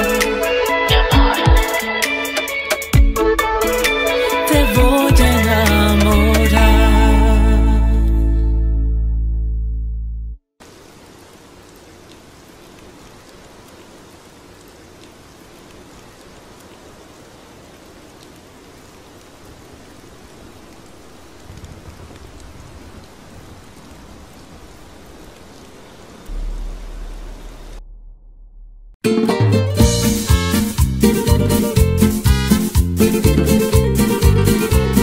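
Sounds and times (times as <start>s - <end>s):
steady rain falling: 10.6s - 27.8s, 30.0s - 35.0s
deep low rumble: 26.3s - 29.0s.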